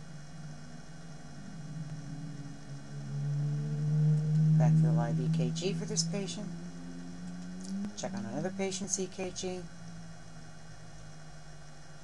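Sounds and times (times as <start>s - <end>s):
higher tone: 0.0s - 11.5s
electrical hum: 0.0s - 12.0s.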